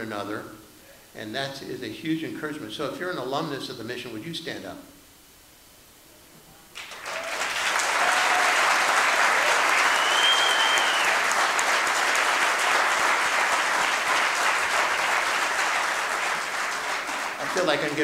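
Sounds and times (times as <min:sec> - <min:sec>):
audience applauding: 0:06.8 - 0:18.0.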